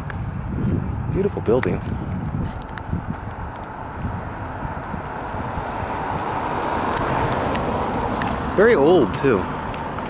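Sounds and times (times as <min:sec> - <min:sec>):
steady outdoor rushing noise: 0:00.0 - 0:10.0
wind rumble on microphone: 0:00.0 - 0:10.0.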